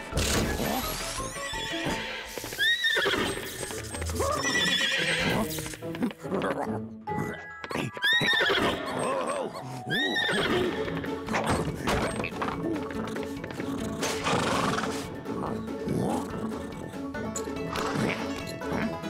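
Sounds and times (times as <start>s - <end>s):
cartoon background music: 0.0s - 19.0s
hooves clip-clopping: 1.4s - 6.6s, 7.2s - 8.9s
horse neighing: 1.5s - 5.5s, 7.8s - 10.9s.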